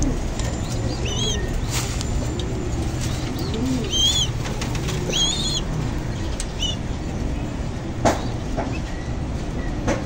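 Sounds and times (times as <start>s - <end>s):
pigeons cooing: 0.0s - 6.9s
wings fluttering: 2.9s - 5.7s.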